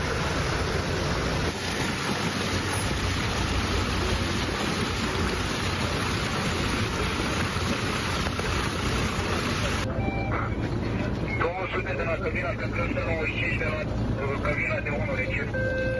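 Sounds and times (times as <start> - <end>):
rain: 0.0 - 9.8
running floodwater: 0.0 - 15.9.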